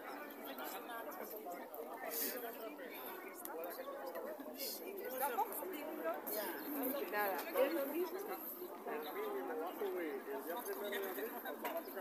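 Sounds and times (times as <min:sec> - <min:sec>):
pedestrians chattering: 0:00.0 - 0:12.0.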